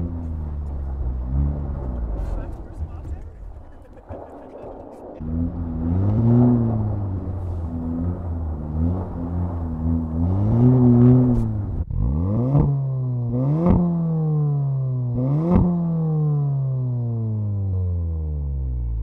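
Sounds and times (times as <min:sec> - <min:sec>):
sharp exhaust cracks: 0:00.0 - 0:18.1
car engine revving: 0:00.0 - 0:19.0.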